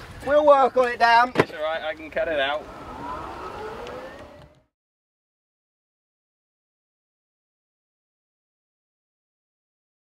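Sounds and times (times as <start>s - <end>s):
electric cart motor whining: 2.1s - 4.7s.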